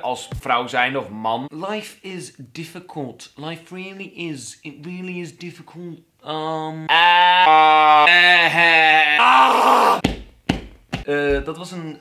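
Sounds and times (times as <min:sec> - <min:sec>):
man groaning: 0:06.9 - 0:10.0
short thumps: 0:10.0 - 0:11.5.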